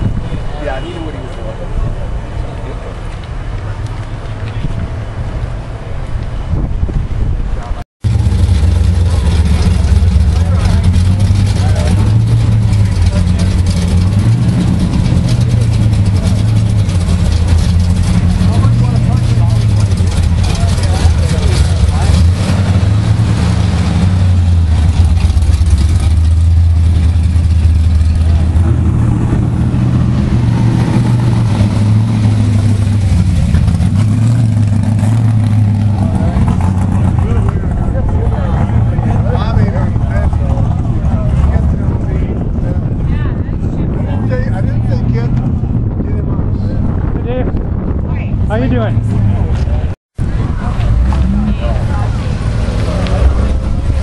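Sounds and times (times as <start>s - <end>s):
car engine rumbling and revving: 0.0s - 54.0s.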